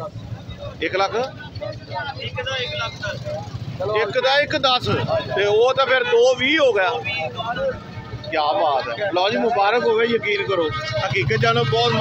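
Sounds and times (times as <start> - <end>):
men talking indistinctly: 0.0 - 12.0.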